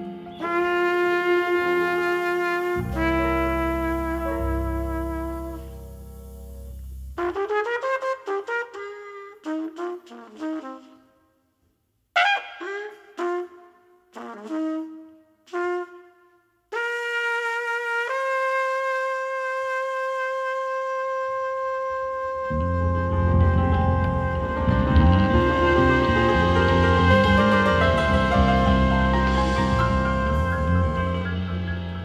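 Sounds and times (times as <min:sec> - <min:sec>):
trumpet playing: 0:00.0 - 0:11.2, 0:12.2 - 0:32.0
band with low bass: 0:02.6 - 0:07.5, 0:22.2 - 0:32.0.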